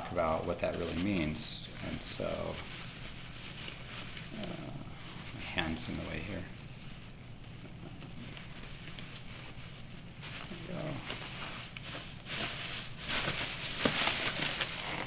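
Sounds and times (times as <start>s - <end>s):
plastic bag rustling and crinkling: 0.0s - 15.0s.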